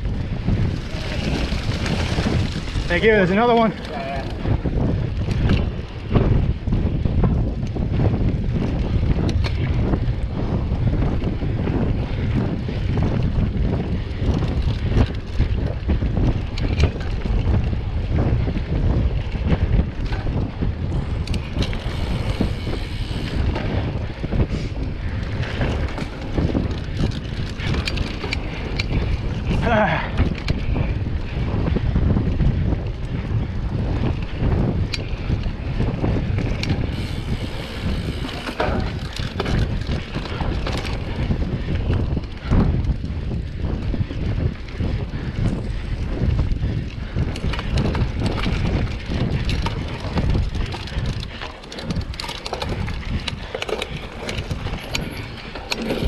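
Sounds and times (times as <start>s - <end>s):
bike tyres and frame rattling: 0.0s - 56.0s
wind buffeting microphone: 0.0s - 56.0s.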